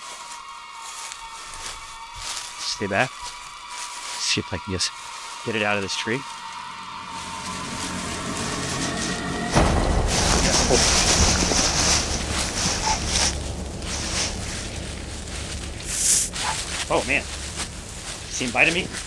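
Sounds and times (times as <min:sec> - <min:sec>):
branches and leaves rustling: 0:00.0 - 0:19.0.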